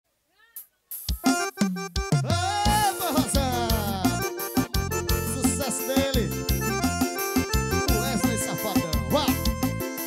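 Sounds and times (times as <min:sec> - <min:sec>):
band music: 0:00.9 - 0:10.0
electronic keyboard notes: 0:01.2 - 0:10.0.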